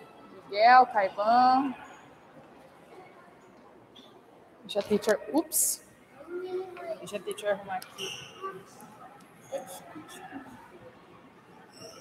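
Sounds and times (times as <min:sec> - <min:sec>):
low indistinct voices: 0:00.0 - 0:12.0.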